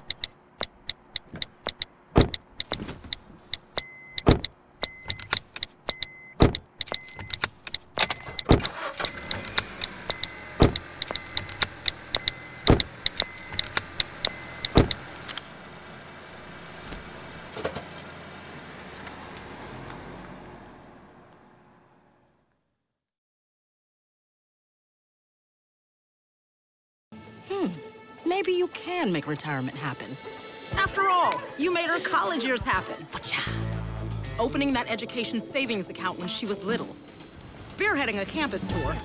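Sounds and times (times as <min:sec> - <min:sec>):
touchscreen keyboard clicking: 0:00.0 - 0:08.5
car road rush: 0:07.4 - 0:22.4, 0:35.9 - 0:39.0.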